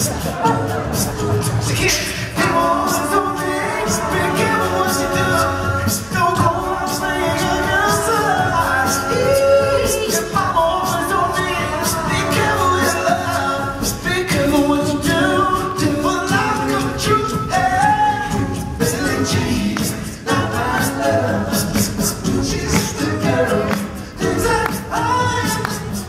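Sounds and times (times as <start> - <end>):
male a cappella group singing: 0.0 - 26.0
vocal percussion beat: 0.0 - 26.0.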